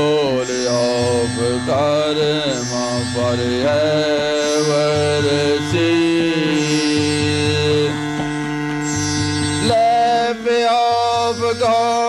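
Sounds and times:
man singing slow melody: 0.0s - 9.0s, 9.6s - 12.0s
sustained drone: 0.0s - 12.0s.

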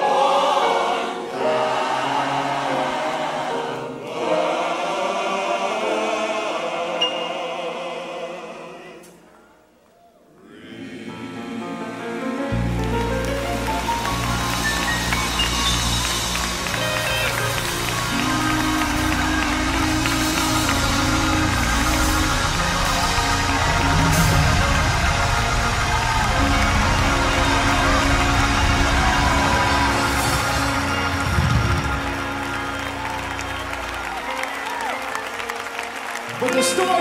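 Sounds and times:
gospel choir and band: 0.0s - 37.0s.

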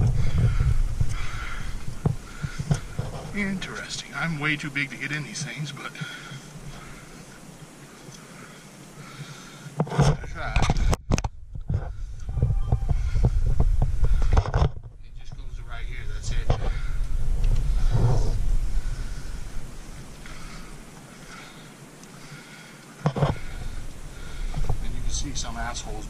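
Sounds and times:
knocks and scrapes on microphone: 2.0s - 3.5s, 9.8s - 16.9s, 17.6s - 18.5s
camera handling rumble: 9.8s - 15.5s.

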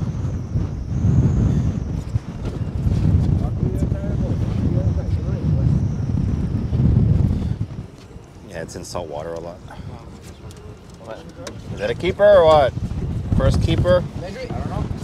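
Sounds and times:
wind buffeting microphone: 0.0s - 15.0s
faint voices: 7.6s - 12.8s.

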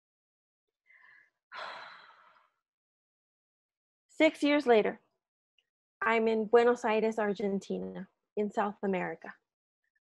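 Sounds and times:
woman sighing: 1.6s - 2.2s.

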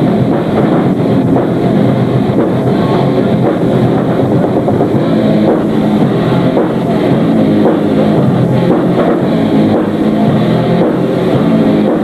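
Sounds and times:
live metal band playing: 0.0s - 12.0s.

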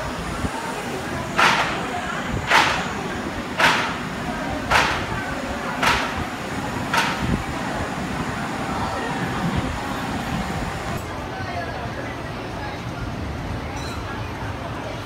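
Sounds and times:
roller coaster train rolling: 0.0s - 15.0s.

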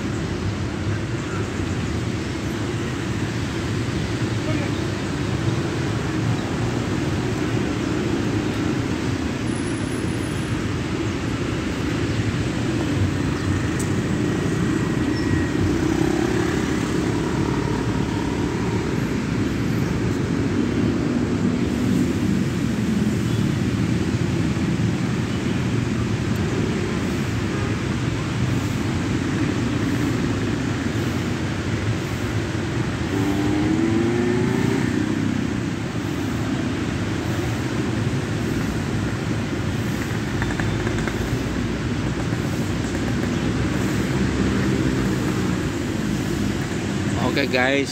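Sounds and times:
road traffic rumble: 0.0s - 47.9s
vehicle engines idling: 0.0s - 47.9s.

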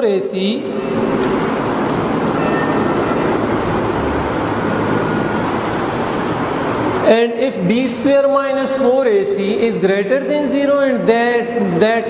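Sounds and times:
steady rushing noise: 0.6s - 8.2s.

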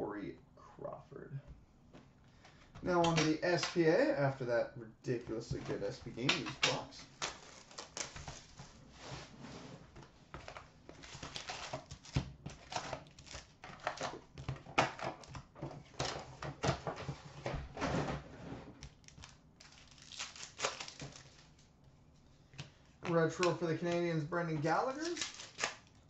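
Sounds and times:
foil wrappers crinkling: 5.4s - 8.8s, 10.4s - 15.4s, 18.9s - 21.7s, 23.1s - 26.0s.

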